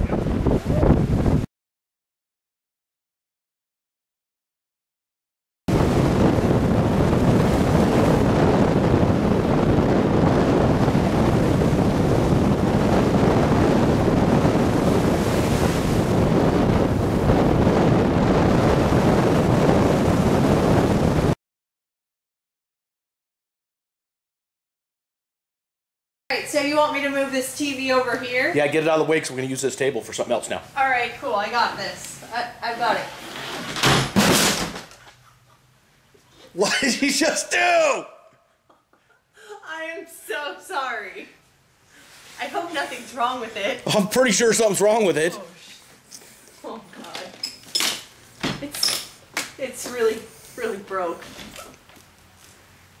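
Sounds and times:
wind buffeting microphone: 0.0s - 1.5s, 5.7s - 21.4s
small waves breaking on beach: 11.4s - 16.5s
tv crashing onto floor: 33.7s - 35.0s.

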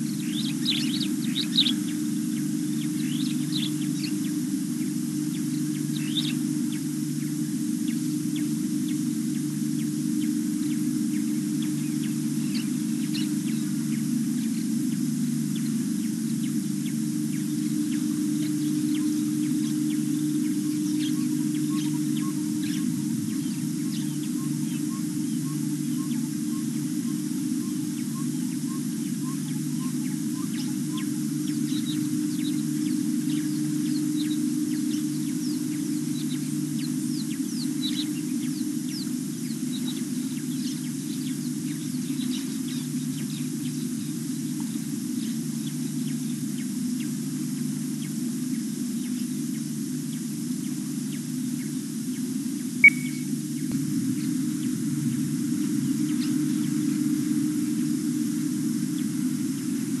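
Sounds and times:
steady low hum: 0.0s - 60.0s
bird chirps: 17.3s - 32.6s, 52.8s - 53.4s.

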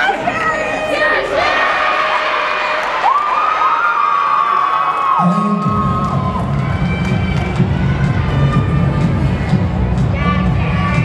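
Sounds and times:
high-pitched cheering shouts: 0.6s - 8.8s.

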